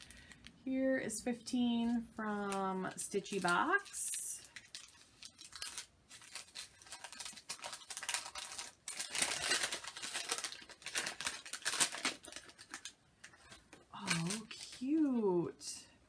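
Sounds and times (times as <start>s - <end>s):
gift wrapping tearing and crinkling: 2.2s - 15.3s.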